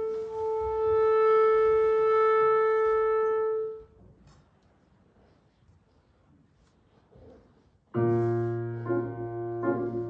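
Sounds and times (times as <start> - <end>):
clarinet holding long note: 0.0 - 3.8.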